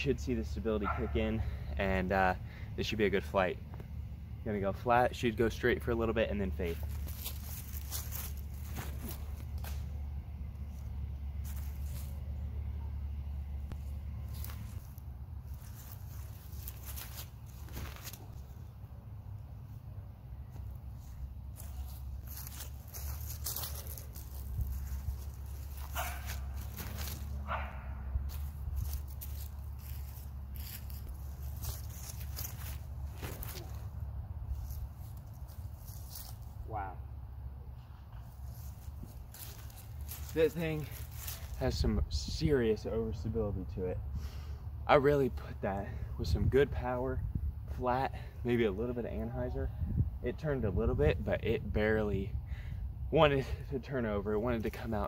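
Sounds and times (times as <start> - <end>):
dog barking: 0.8 - 1.1, 26.0 - 26.3
wind rumble on microphone: 46.2 - 47.8, 49.6 - 53.0.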